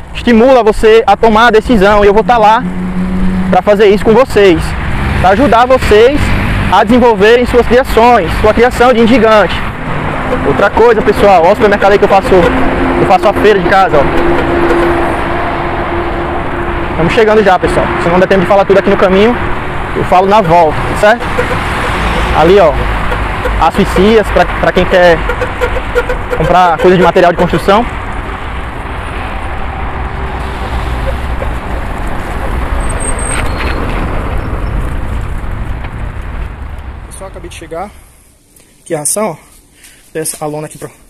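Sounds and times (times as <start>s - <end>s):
vehicle engine hum: 0.0s - 38.6s
road and wind noise: 0.0s - 41.0s.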